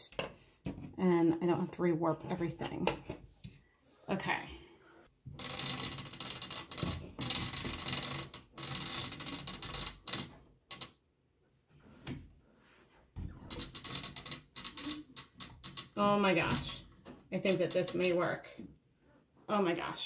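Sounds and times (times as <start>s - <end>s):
wooden rod scraping and tapping: 13.2s - 18.7s.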